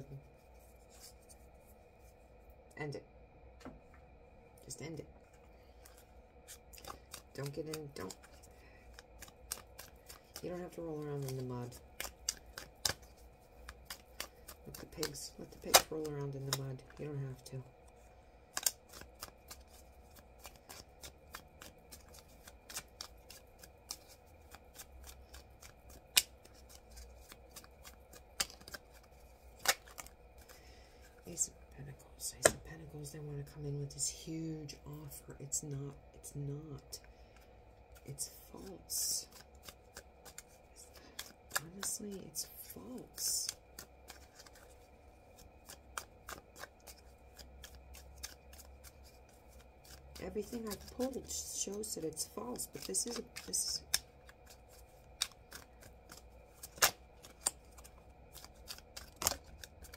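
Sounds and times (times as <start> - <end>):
cards being shuffled: 0.5 - 1.6, 5.8 - 31.5, 37.3 - 59.9
sharp card snaps: 13.8 - 16.6, 18.5 - 19.6, 24.8 - 29.0, 55.2 - 59.9.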